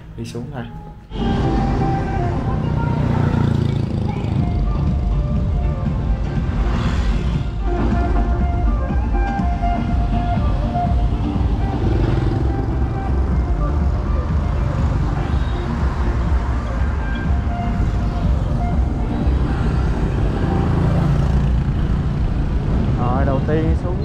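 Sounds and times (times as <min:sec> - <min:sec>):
background music: 0:00.0 - 0:24.0
cars and motorbikes passing: 0:01.1 - 0:24.0
low rumble of road noise: 0:01.1 - 0:24.0.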